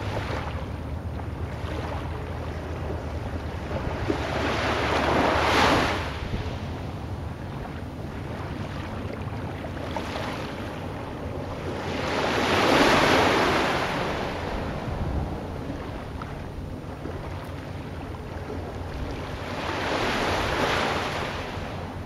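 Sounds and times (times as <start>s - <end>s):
low surf rumble: 0.0s - 22.0s
waves washing in: 0.0s - 22.0s.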